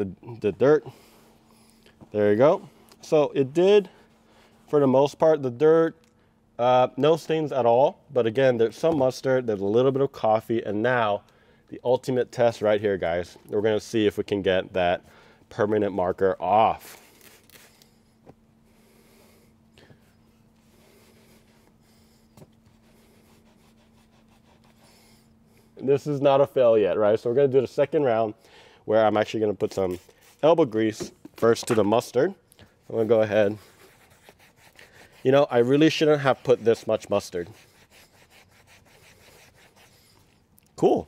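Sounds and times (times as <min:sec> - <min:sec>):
low steady hum: 0:00.0 - 0:41.0
cloth rubbing on leather seat: 0:20.6 - 0:24.9, 0:32.8 - 0:40.1.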